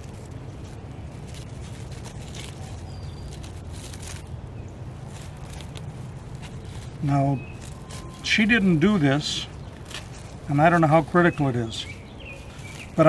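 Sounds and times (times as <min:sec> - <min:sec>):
low background hum: 0:00.0 - 0:13.0
plastic wrap crinkling: 0:00.0 - 0:13.0.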